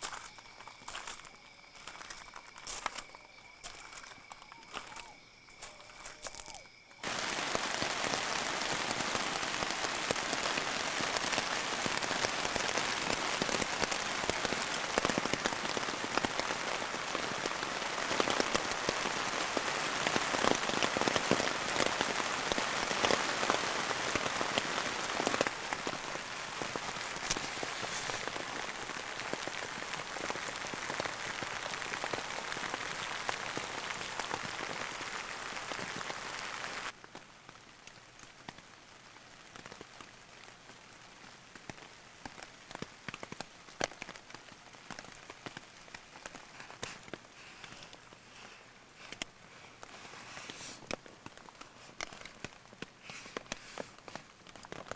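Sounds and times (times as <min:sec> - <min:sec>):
rain pattering on tent fabric: 0:00.0 - 0:54.9.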